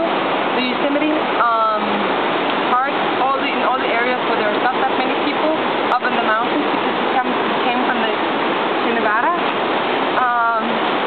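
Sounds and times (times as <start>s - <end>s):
voices: 0.0s - 9.5s, 10.2s - 10.8s
falling water rushing: 0.0s - 11.0s.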